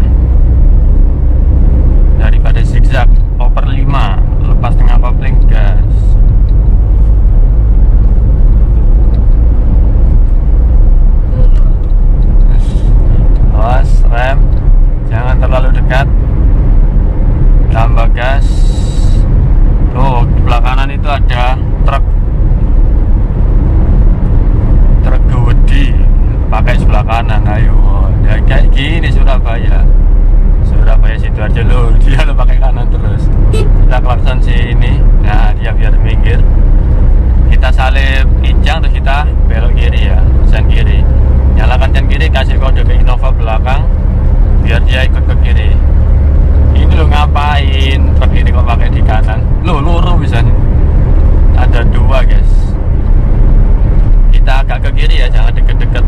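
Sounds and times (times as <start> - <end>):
car cabin engine and road drone: 0.0 - 56.0
people talking: 2.2 - 6.2, 11.3 - 14.5, 15.1 - 16.1, 17.7 - 19.2, 20.0 - 22.0, 25.0 - 29.9, 30.6 - 36.4, 37.5 - 41.0, 41.6 - 43.9, 44.6 - 45.8, 46.8 - 50.6, 51.6 - 52.7, 54.3 - 56.0.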